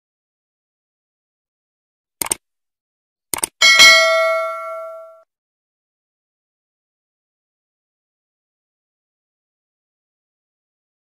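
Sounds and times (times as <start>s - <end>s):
double mouse click: 3.4s - 3.6s
bright bell ding: 3.6s - 5.2s.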